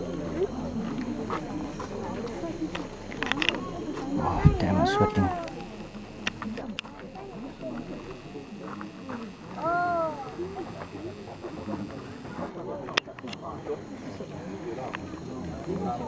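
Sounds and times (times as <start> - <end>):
crowd talking: 0.0 - 16.0.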